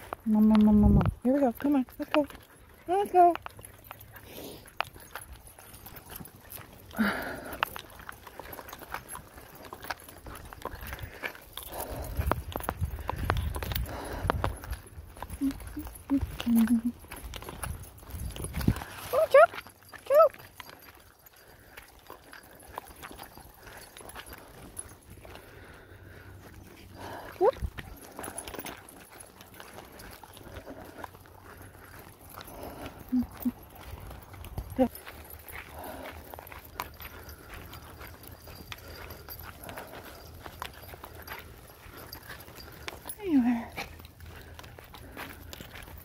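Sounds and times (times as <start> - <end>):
footsteps on dirt trail: 0.0 - 46.0.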